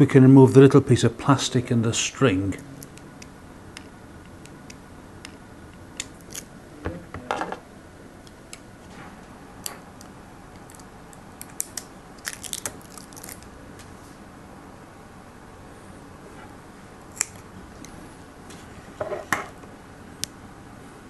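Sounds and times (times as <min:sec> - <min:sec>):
plastic crinkling: 0:11.7 - 0:13.5.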